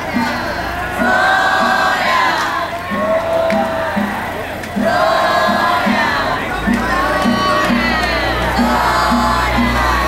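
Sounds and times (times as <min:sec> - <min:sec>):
crowd shouting together: 0:00.0 - 0:10.0
steady low beat: 0:00.0 - 0:10.0.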